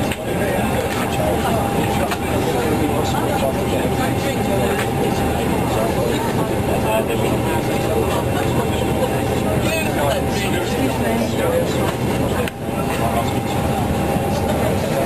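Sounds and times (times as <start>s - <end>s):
airliner cabin noise: 0.0s - 15.0s
people talking: 0.0s - 15.0s.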